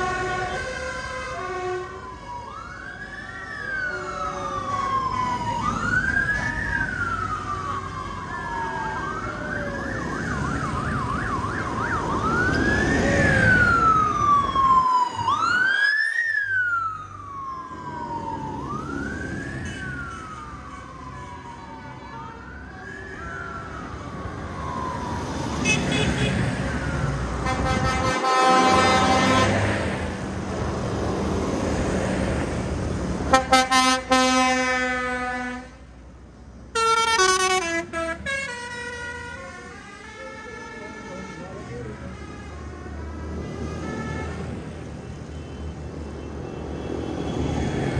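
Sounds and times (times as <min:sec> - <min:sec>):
tractor engines rumbling: 0:00.0 - 0:47.9
siren wailing: 0:01.3 - 0:29.6
horns sounding: 0:27.4 - 0:29.8, 0:33.3 - 0:35.8, 0:36.8 - 0:39.6.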